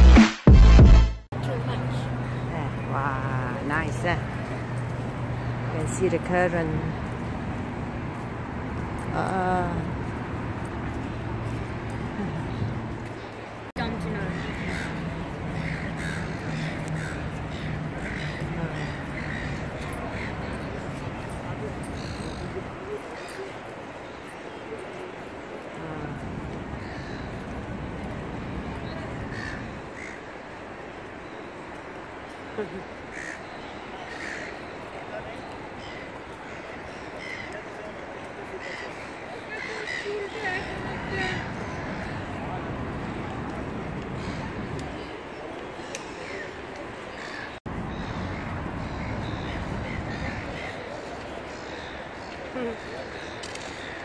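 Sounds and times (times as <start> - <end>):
low city hum: 0.0 - 54.0
gulls squawking: 13.8 - 20.6.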